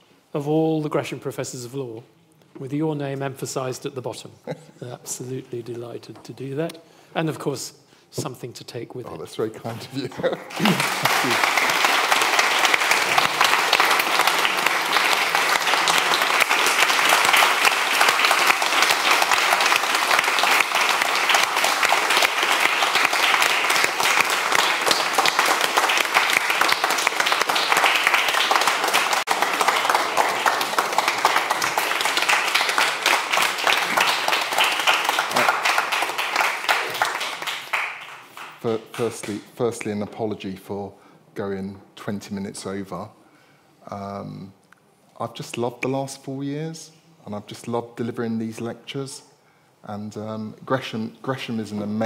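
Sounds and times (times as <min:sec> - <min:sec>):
audience applauding: 0:10.3 - 0:39.4.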